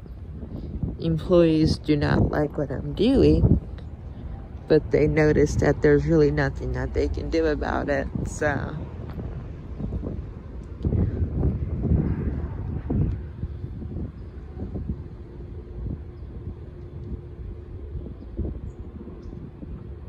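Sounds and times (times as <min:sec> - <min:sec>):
steady low hum: 0:00.0 - 0:20.0
wind on microphone: 0:00.0 - 0:20.0.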